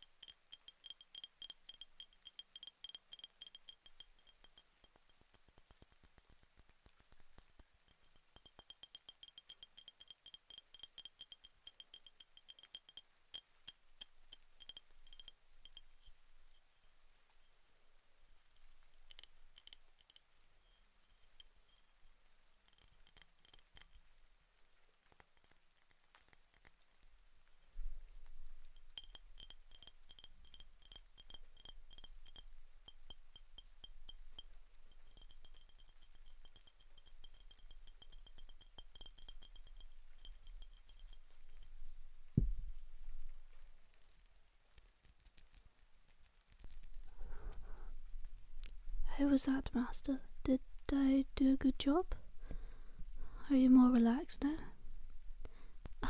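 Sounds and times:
glass tapped with high ring: 0:00.0 - 0:16.1, 0:29.0 - 0:41.6.

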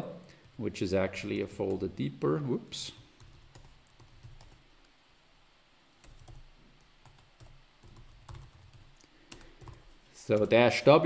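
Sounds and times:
computer keyboard typing: 0:03.2 - 0:04.6, 0:06.0 - 0:10.8.

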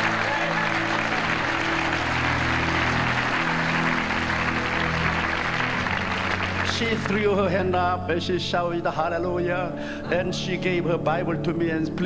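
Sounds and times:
congregation applauding: 0:00.0 - 0:07.8
low chords of background music: 0:00.0 - 0:12.0.

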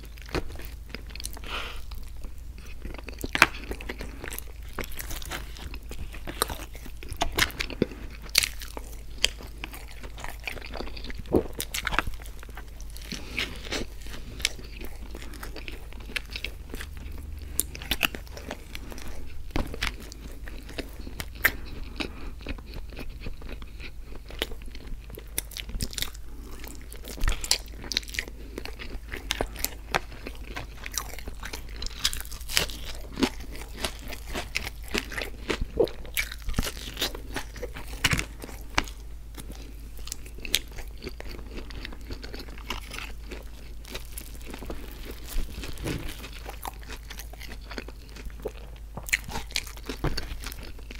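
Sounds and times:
faint low hum: 0:00.0 - 0:50.9
person chewing food: 0:00.0 - 0:50.9.

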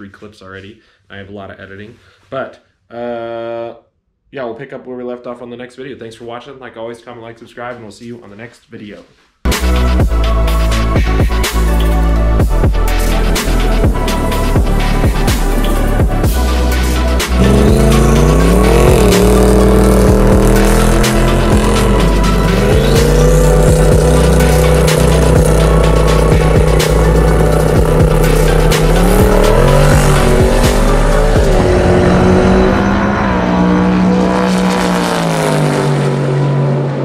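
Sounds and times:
music: 0:09.4 - 0:33.1
deep bass: 0:09.5 - 0:35.3
race car engine revving: 0:16.7 - 0:37.0.

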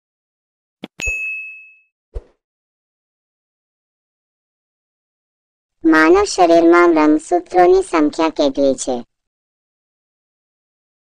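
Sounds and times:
bright ringing ding: 0:00.9 - 0:01.9.

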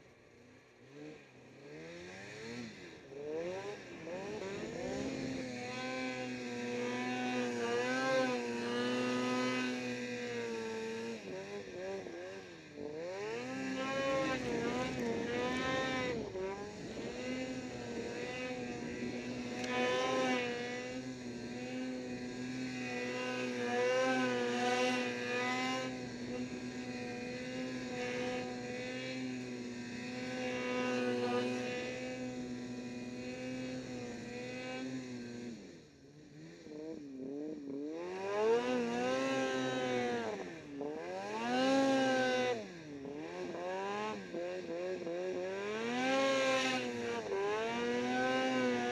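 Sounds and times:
snowmobile engine under throttle: 0:00.0 - 0:48.9.

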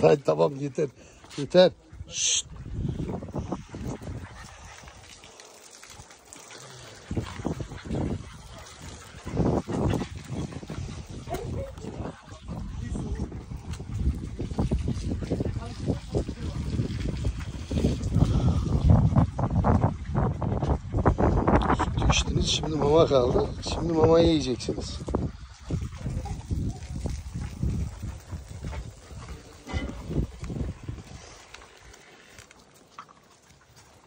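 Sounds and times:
puppies lapping milk: 0:00.0 - 0:34.0.

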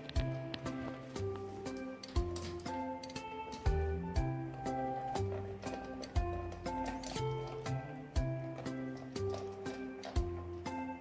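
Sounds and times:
melodic background music: 0:00.0 - 0:11.0.

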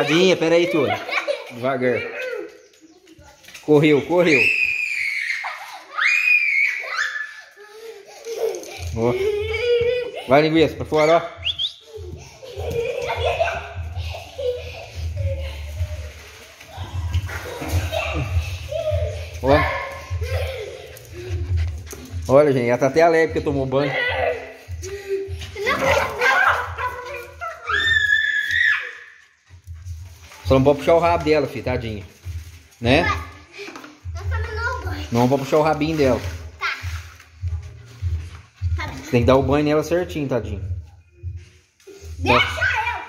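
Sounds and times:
child shrieking: 0:04.5 - 0:07.8, 0:27.6 - 0:29.1.

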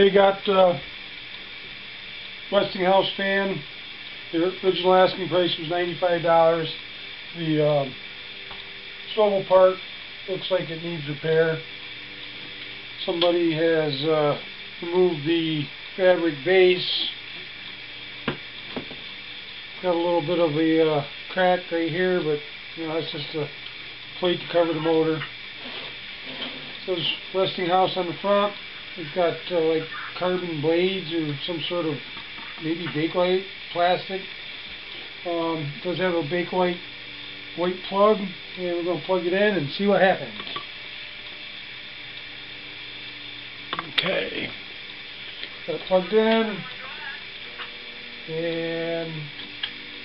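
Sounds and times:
background hiss: 0:00.0 - 0:50.0.

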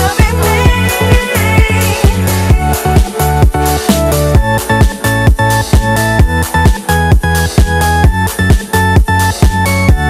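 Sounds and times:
sustained synth chords: 0:00.0 - 0:07.5
kick drum beat: 0:00.0 - 0:10.0.

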